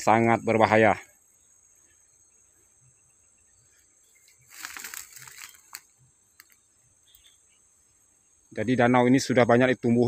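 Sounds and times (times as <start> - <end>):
high insect chirring: 0.0 - 10.0
plants rustling and crackling: 4.1 - 7.2
faint clicks: 4.3 - 7.3.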